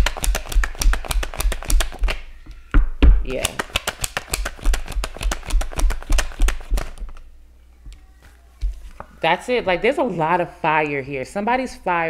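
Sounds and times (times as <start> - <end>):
cards being shuffled: 0.0 - 2.6, 3.3 - 7.3.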